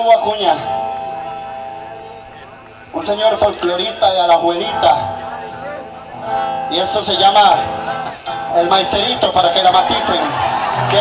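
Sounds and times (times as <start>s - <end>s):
man speaking: 1.8s - 11.0s.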